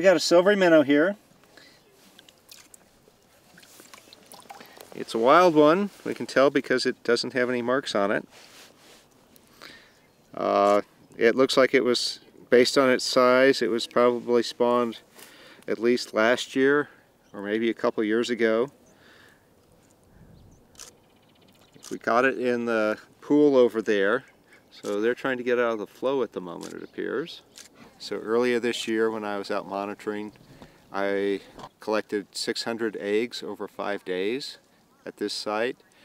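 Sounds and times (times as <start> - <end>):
water splashing in a bucket: 2.2 - 5.1.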